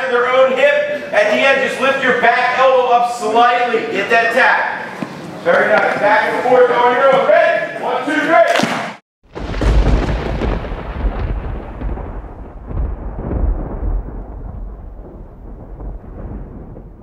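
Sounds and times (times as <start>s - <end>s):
deep thunder-like rumble: 9.3s - 17.0s.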